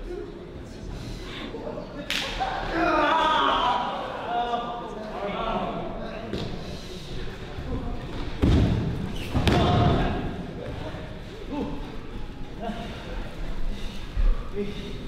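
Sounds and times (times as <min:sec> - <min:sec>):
crowd voices: 0:00.0 - 0:15.0.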